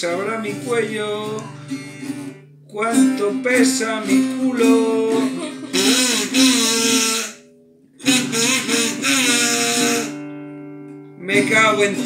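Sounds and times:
strummed acoustic guitar: 0.0s - 12.0s
harmonica: 4.0s - 10.4s.

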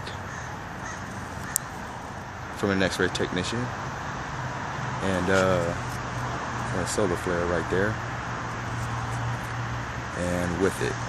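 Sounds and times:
crows cawing: 0.0s - 2.1s
outdoor background noise: 0.0s - 11.0s.

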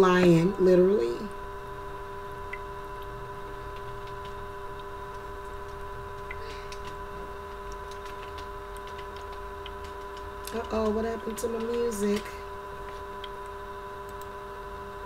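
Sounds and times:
steady background hum: 0.0s - 15.0s
faint irregular ticks: 3.7s - 14.4s.

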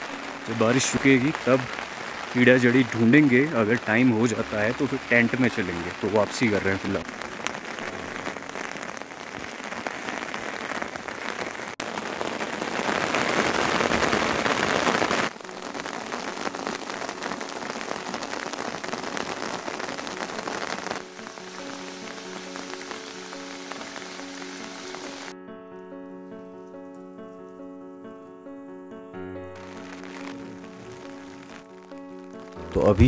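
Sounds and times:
heavy rain falling: 0.0s - 25.4s, 29.2s - 33.0s
slow piano tune: 0.0s - 33.0s.

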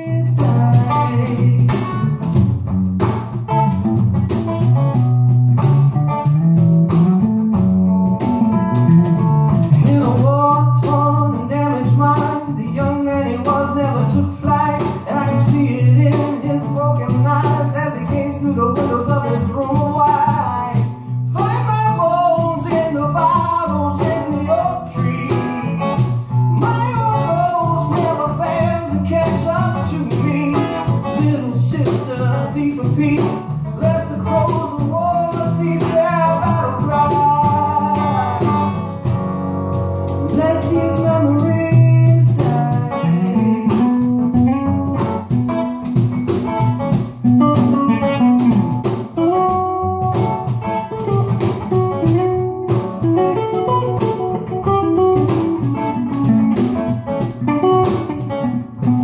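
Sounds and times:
person singing: 0.0s - 2.2s, 8.5s - 38.8s, 40.2s - 45.8s
low bass line: 0.0s - 59.0s
strummed acoustic guitar: 0.0s - 59.0s.

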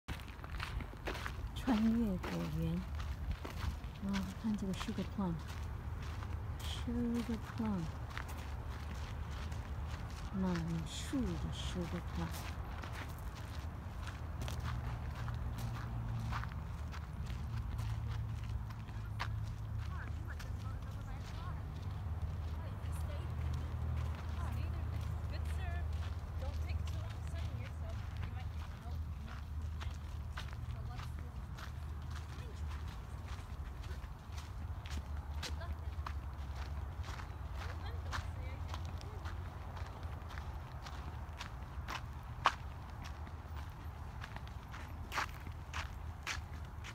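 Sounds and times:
footsteps on dirt path: 0.1s - 46.9s.

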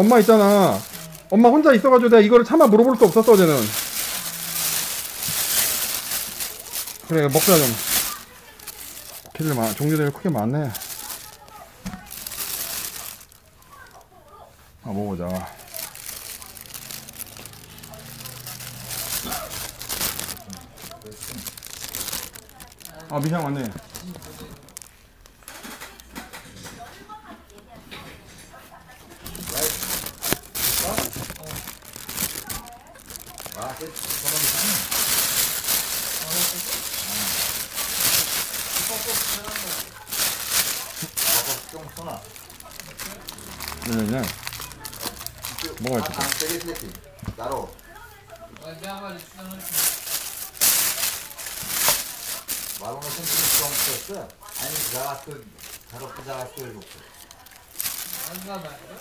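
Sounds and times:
plastic bag crinkling: 0.0s - 59.0s.

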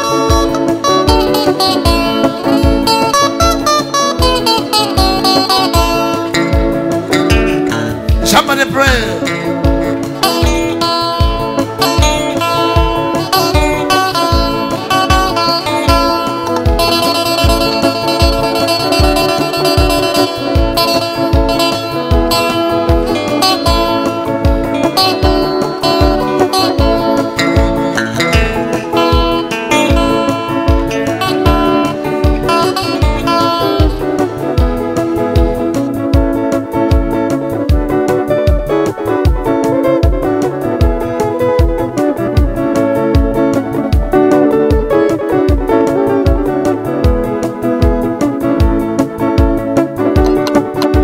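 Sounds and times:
electric guitar melody: 0.0s - 51.0s
steady low beat: 0.0s - 51.0s.

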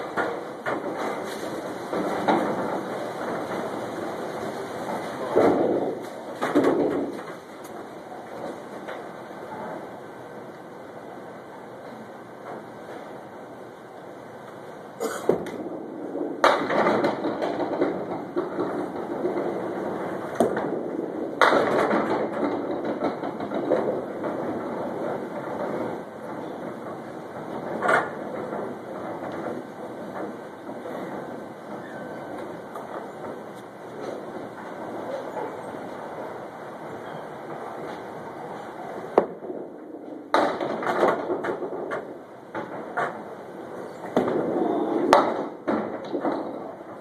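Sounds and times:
bowling pins knocking: 0.0s - 9.9s, 15.0s - 47.0s
bowling ball rolling rumble: 0.0s - 47.0s.

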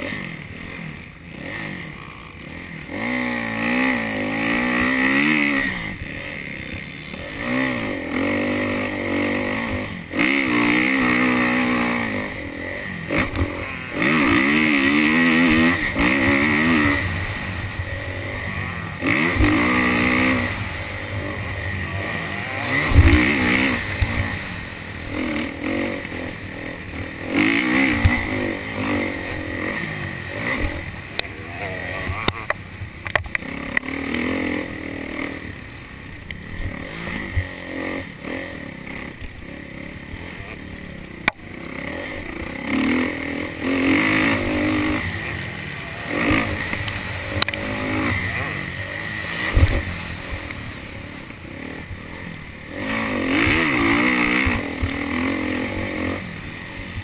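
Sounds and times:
motocross bike engine revving: 0.0s - 57.0s.

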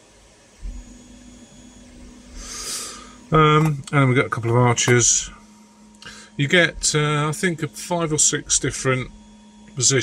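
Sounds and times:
faint steady hum: 0.0s - 10.0s
short breath: 2.4s - 3.2s, 6.0s - 6.4s.

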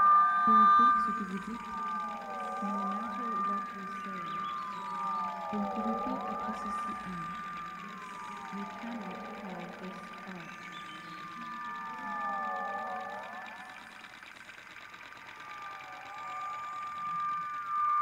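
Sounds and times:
gliding tones swooping: 0.0s - 18.0s
steady high electronic tone: 0.0s - 18.0s.

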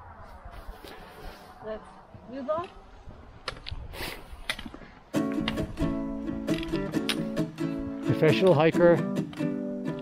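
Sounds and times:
footsteps on rocky trail: 2.5s - 5.8s
strummed acoustic guitar: 5.1s - 10.0s.

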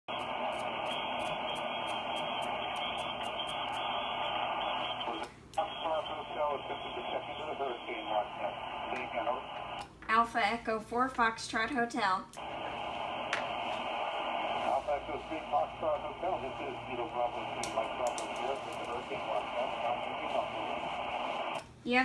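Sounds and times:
radio static hiss: 0.1s - 10.0s, 12.4s - 21.6s
weak voice over radio: 3.2s - 9.8s, 13.8s - 21.6s.

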